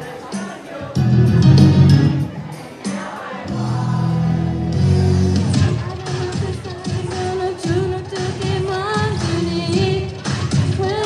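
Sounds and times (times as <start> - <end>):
backing music with beat: 0.0 - 11.0
girl singing pop song: 5.6 - 11.0.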